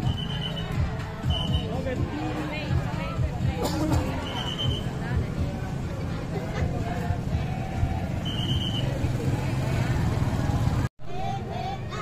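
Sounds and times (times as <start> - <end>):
motorcycle engines rumbling: 0.0 - 12.0.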